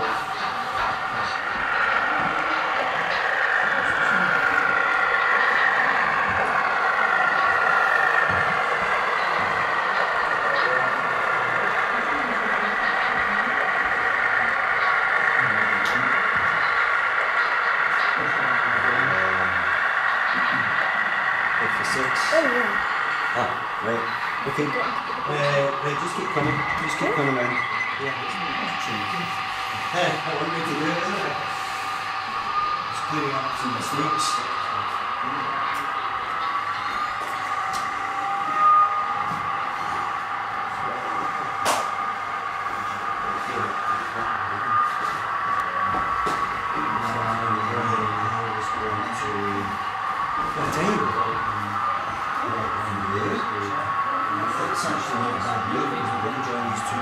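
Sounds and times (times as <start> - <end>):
indistinct chatter: 0.0 - 57.0
steady high motor whine: 0.0 - 57.0.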